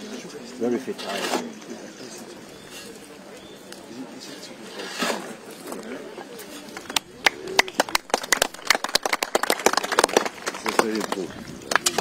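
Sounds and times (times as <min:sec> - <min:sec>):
murmuring voices: 0:00.0 - 0:12.0.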